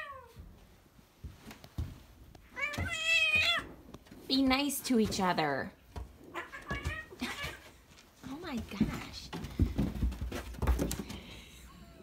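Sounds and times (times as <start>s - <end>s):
cats play-fighting: 1.6s - 4.3s, 4.9s - 12.0s.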